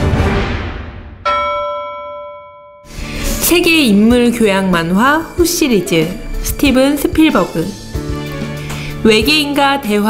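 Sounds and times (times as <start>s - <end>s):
bell-like chime ringing: 1.2s - 3.0s.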